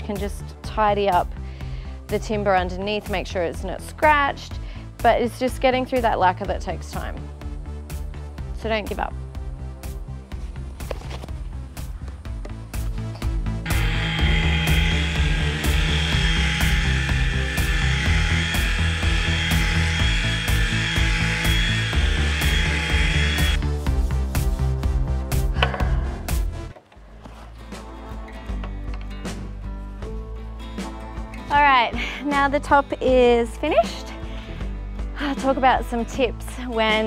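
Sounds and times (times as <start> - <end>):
background music with beat: 6.9 - 37.0
orbital sander on wood: 13.6 - 23.8.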